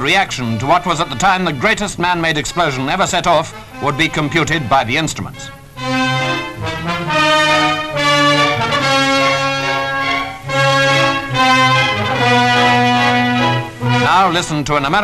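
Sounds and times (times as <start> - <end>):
orchestral brass chords: 0.0 - 15.0.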